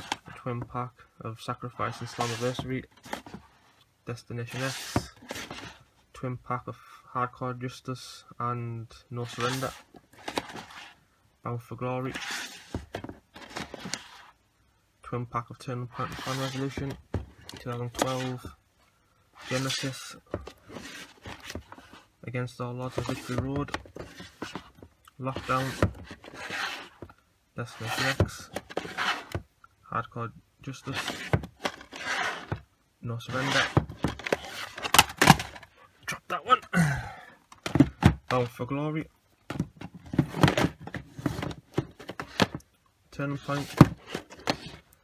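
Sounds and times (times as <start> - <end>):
plastic case scraping rustle: 1.7 - 3.6, 4.5 - 5.8, 9.2 - 11.0, 12.1 - 14.4, 15.9 - 18.5, 19.4 - 22.1, 22.8 - 29.4, 30.8 - 32.6, 33.2 - 35.7, 39.5 - 42.6, 43.3 - 44.9.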